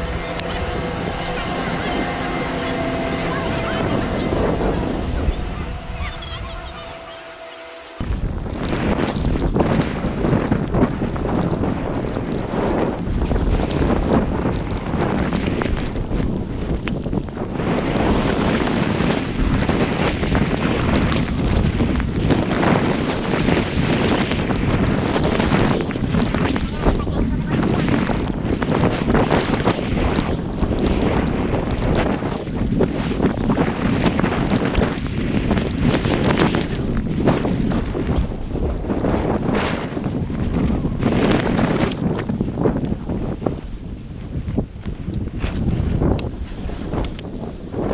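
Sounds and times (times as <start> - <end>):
wind rushing over camera microphone: 0.0 - 47.9.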